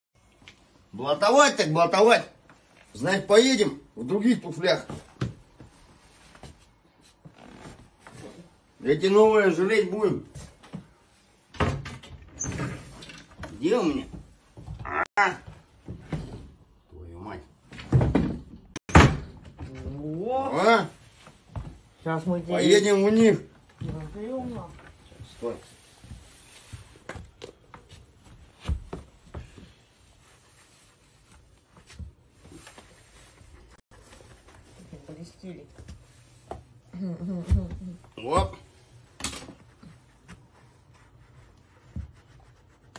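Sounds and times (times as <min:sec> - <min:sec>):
shoes shuffling on linoleum: 0:20.9 - 0:36.8.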